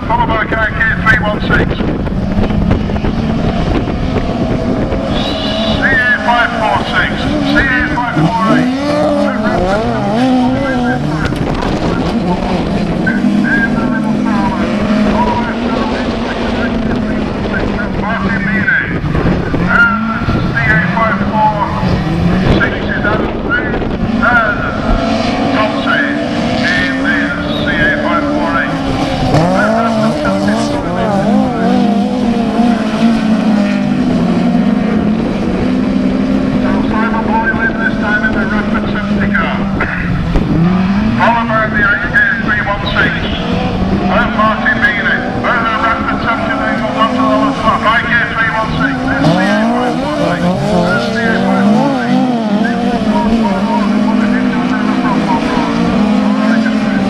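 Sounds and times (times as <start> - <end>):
race car engines revving: 0.0 - 57.0.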